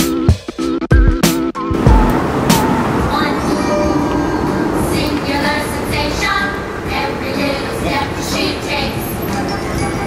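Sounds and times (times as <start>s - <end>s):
loud rumbling noise: 1.7s - 9.1s
voices: 1.8s - 10.0s.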